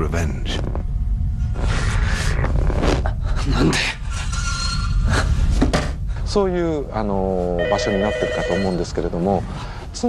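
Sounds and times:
telephone ringing: 7.6s - 8.8s.

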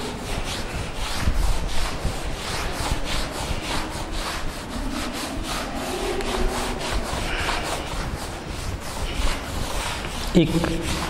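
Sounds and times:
duster rubbing chalkboard: 0.0s - 11.0s.

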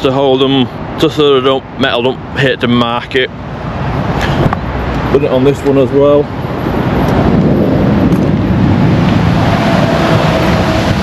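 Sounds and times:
lorries rumbling nearby: 0.0s - 11.0s
wind buffeting microphone: 0.0s - 11.0s.

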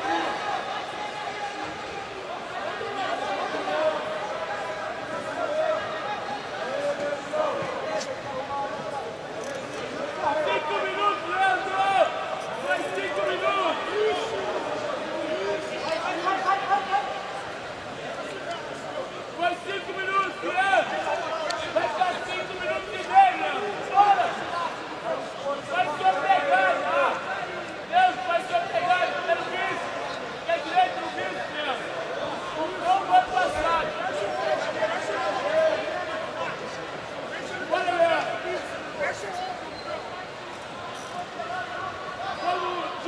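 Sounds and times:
crowd murmur: 0.0s - 43.0s.

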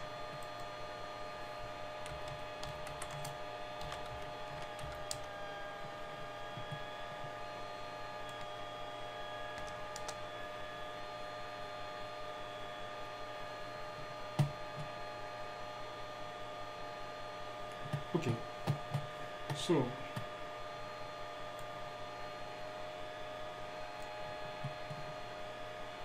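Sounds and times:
steady electrical hum: 0.0s - 26.0s
keyboard and mouse clicks: 2.0s - 5.3s, 9.6s - 10.2s, 17.8s - 20.2s.

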